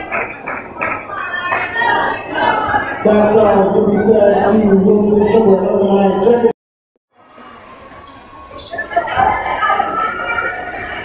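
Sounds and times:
gymnasium crowd noise: 0:00.0 - 0:06.5, 0:07.1 - 0:11.0.

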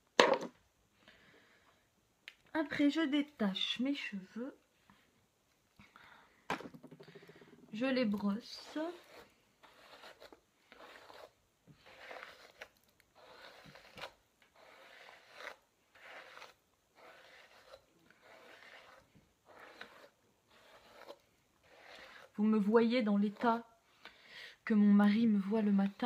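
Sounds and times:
hairbrush strokes through hair: 0:08.2 - 0:22.4.

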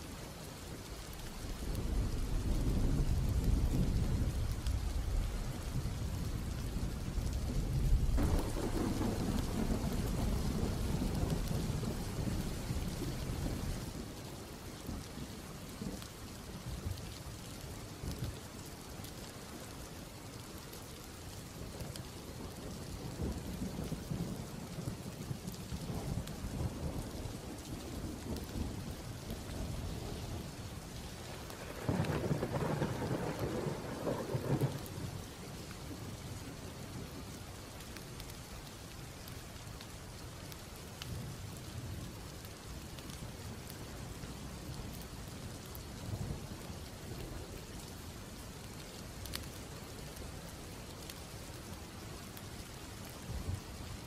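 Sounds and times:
steady rain: 0:00.0 - 0:54.0
thunder rumbling: 0:01.5 - 0:14.0, 0:22.4 - 0:37.1.

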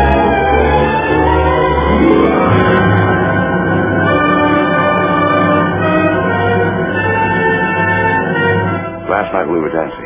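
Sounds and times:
orchestral music with long notes: 0:00.0 - 0:10.0.

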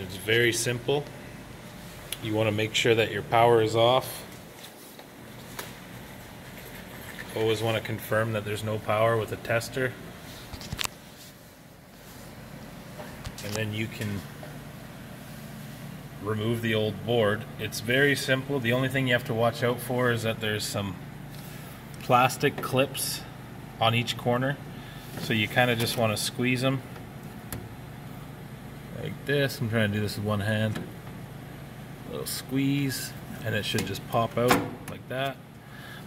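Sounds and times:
low hum and hiss: 0:00.0 - 0:36.0.

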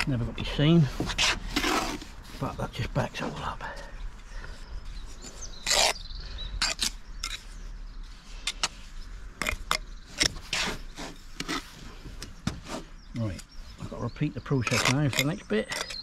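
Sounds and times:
trowel scraping brick and mortar: 0:00.9 - 0:02.2, 0:05.2 - 0:06.0, 0:09.4 - 0:11.8, 0:14.5 - 0:16.0.

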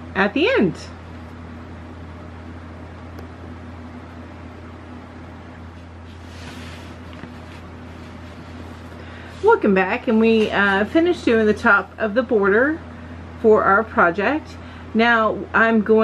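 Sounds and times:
low hum: 0:00.0 - 0:14.9
faint soft rustle: 0:05.7 - 0:11.1.

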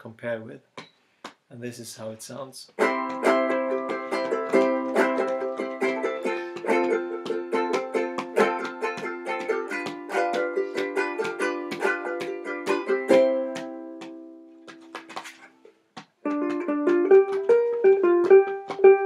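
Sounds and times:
ukulele strummed chords: 0:02.7 - 0:15.5, 0:16.2 - 0:19.0.

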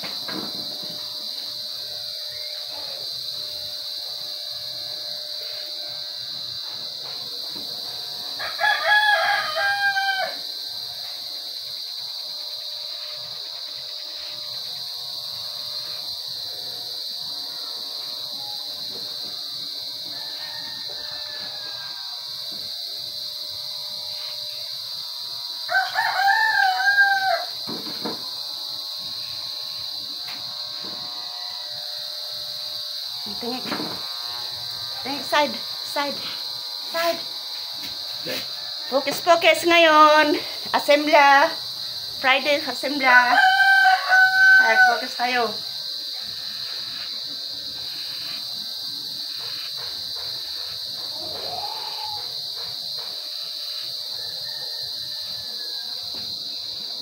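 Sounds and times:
rooster crowing: 0:08.3 - 0:10.6, 0:19.9 - 0:22.6, 0:25.6 - 0:27.6, 0:31.2 - 0:32.1, 0:38.2 - 0:39.4, 0:43.0 - 0:45.5, 0:51.1 - 0:52.5, 0:53.7 - 0:56.5.

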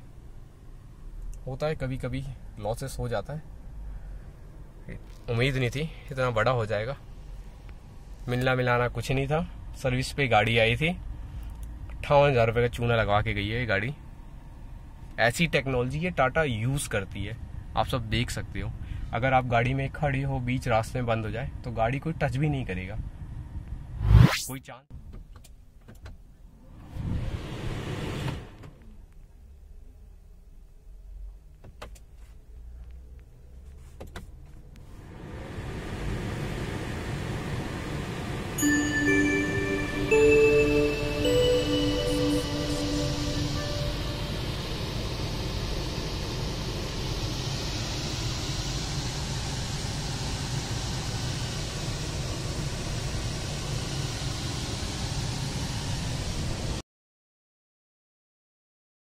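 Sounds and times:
car idling hum and hiss: 0:00.0 - 0:23.8, 0:25.1 - 0:56.8
low hum: 0:34.8 - 0:56.7
car start-up chime: 0:38.6 - 0:46.3.

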